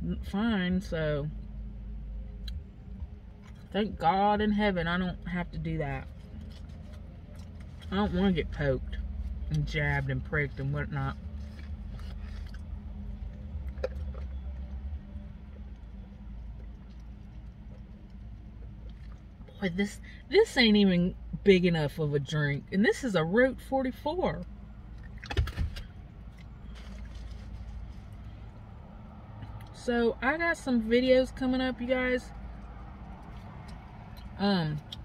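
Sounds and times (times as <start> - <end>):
car engine idling: 0.0 - 35.0.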